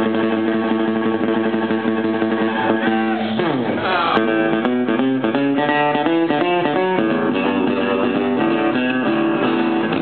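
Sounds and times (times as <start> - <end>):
blues band playing: 0.0 - 10.0.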